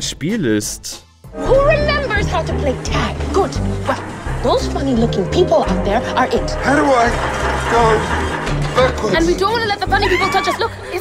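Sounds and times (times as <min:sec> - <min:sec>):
background music with bass line: 0:00.0 - 0:11.0
woman's voice: 0:09.2 - 0:11.0.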